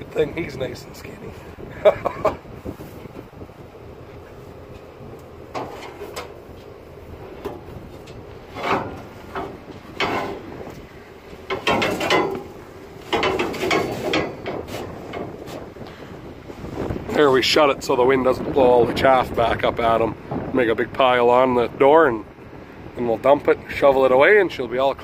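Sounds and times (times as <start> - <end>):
wind buffeting microphone: 0.0 - 25.0
scrapes and knocks in metal bin: 8.5 - 10.4, 11.5 - 12.5.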